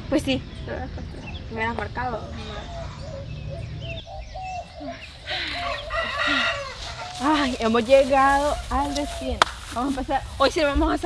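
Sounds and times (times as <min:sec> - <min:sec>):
chickens clucking: 0:00.7 - 0:09.3
rooster crowing: 0:05.4 - 0:07.6.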